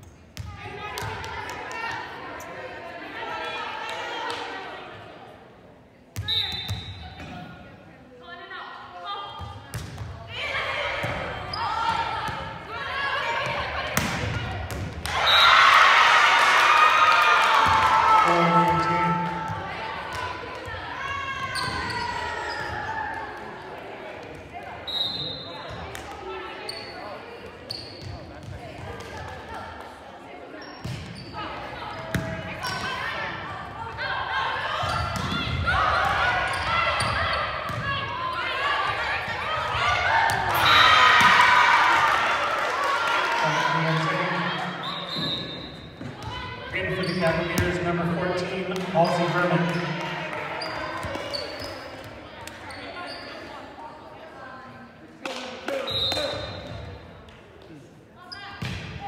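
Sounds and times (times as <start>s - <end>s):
sneaker squeaks: 6.2s - 7.4s, 11.0s - 12.4s, 21.1s - 22.9s, 24.8s - 25.9s, 26.6s - 28.5s, 30.5s - 33.1s, 34.7s - 38.7s, 44.6s - 47.8s, 49.0s - 53.6s, 55.8s - 57.0s, 58.2s - 58.9s
volleyball contacts and thuds: 13.4s - 15.2s.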